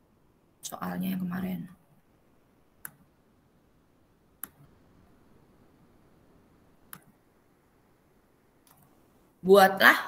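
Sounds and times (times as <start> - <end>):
room hiss: 0.0 - 10.0
computer mouse clicks: 2.8 - 3.1, 4.4 - 4.7, 6.8 - 7.2, 8.6 - 9.0.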